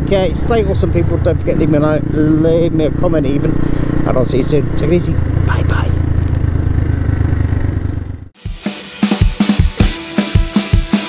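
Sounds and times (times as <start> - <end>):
motorcycle engine idling: 0.0 - 8.3.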